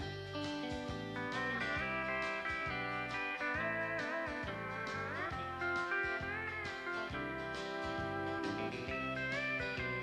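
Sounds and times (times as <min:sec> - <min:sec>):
electric bass line: 0:00.0 - 0:10.0
pedal steel guitar sliding: 0:00.6 - 0:10.0.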